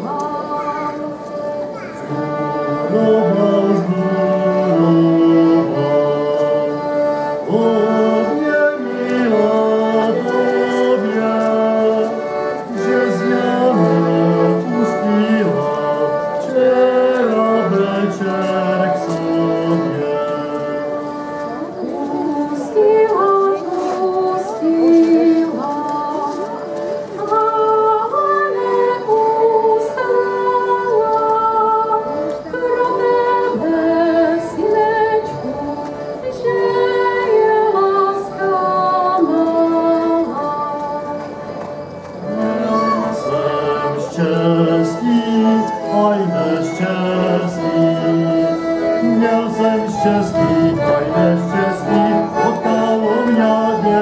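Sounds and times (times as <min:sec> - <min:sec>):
group singing slow folk song: 0:00.0 - 0:54.0.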